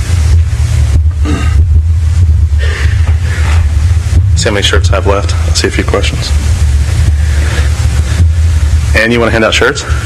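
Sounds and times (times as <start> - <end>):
even hiss: 0.0 - 10.0
low rumble: 0.0 - 10.0.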